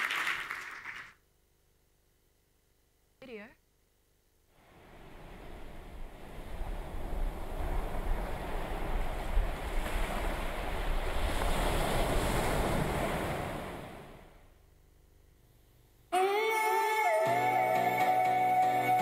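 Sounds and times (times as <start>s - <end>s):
ocean surf: 4.6s - 14.4s.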